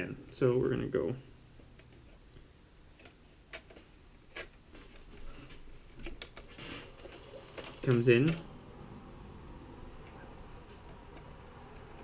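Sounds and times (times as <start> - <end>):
faint mechanical whir: 0.0 - 12.0.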